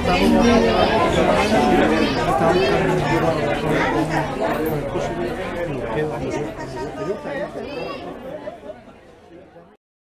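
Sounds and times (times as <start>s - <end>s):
people chattering: 0.0s - 9.8s.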